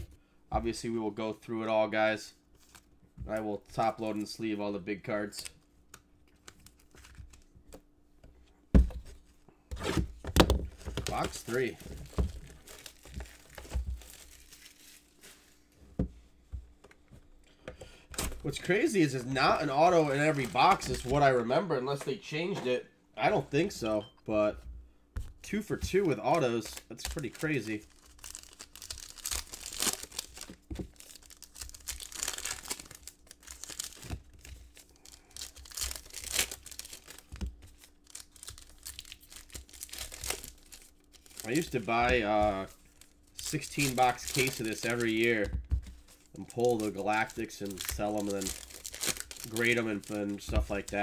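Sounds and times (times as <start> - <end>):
shrink wrap crackling: 10.9 - 15.6, 25.8 - 51.0.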